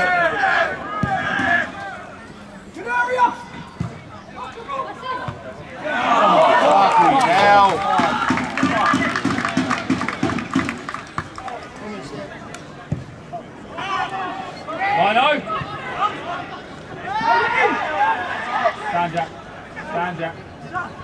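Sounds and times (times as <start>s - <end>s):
crowd calling out together: 0.0s - 3.8s
hand clapping: 7.7s - 11.6s.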